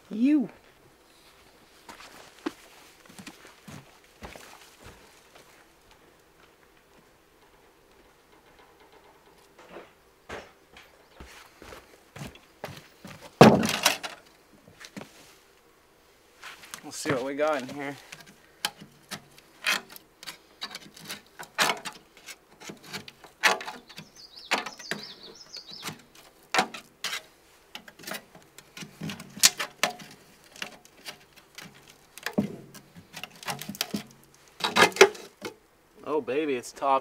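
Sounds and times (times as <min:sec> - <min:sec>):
tool prying metal bucket lid: 0:31.6 - 0:35.5.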